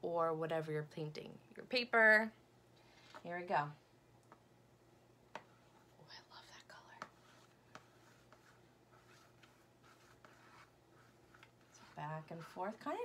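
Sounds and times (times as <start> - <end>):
paintbrush swishing on paper plate: 6.8 - 13.0.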